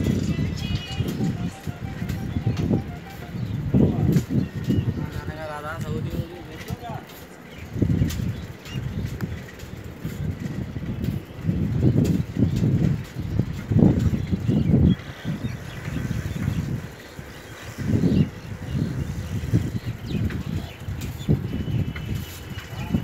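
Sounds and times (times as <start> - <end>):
road noise: 0.0 - 23.0
wind buffeting microphone: 0.0 - 23.0.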